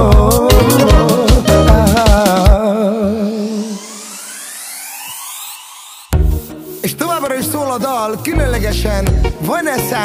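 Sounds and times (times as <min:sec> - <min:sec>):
synthesized rising sweep: 0:00.3 - 0:07.6.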